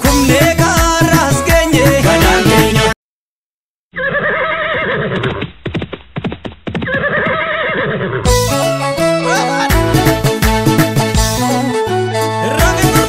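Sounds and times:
band music: 0.0 - 3.0, 8.3 - 13.0
horse whinnying: 3.9 - 5.4, 6.8 - 8.3
hoof clip-clops: 5.0 - 7.7.

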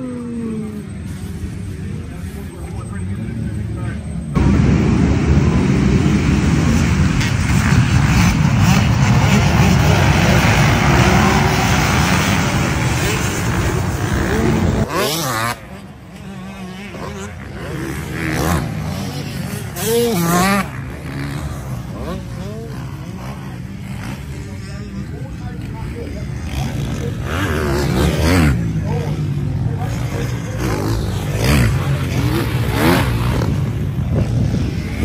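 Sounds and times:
motocross bikes revving: 0.0 - 35.0.

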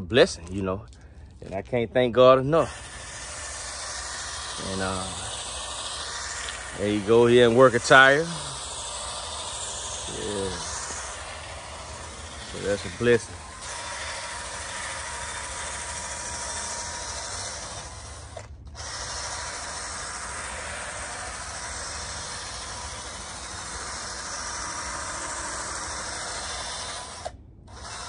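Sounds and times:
power tool whirring on tire: 0.0 - 28.0.

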